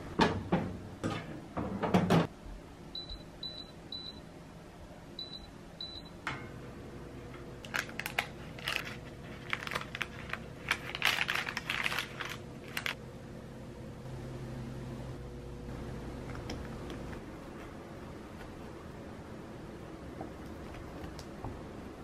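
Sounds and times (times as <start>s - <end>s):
short high oven beeps: 2.9s - 4.3s, 5.2s - 6.2s
baking parchment rustling: 7.6s - 13.0s.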